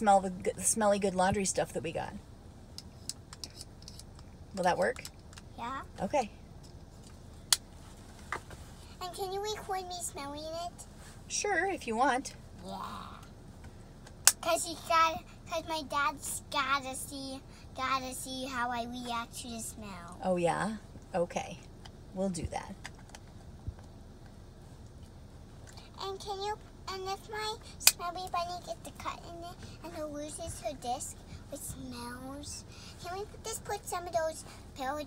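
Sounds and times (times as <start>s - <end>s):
low steady rumble: 0.0s - 35.0s.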